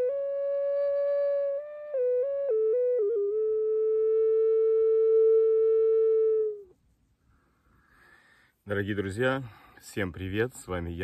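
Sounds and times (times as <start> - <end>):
ocarina notes: 0.0 - 7.0.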